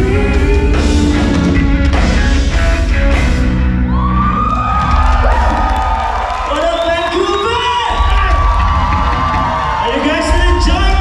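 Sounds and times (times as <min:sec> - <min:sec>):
live rock band playing: 0:00.0 - 0:06.2
audience cheering and whooping: 0:03.7 - 0:11.0
drum hits: 0:04.7 - 0:06.2, 0:07.8 - 0:11.0.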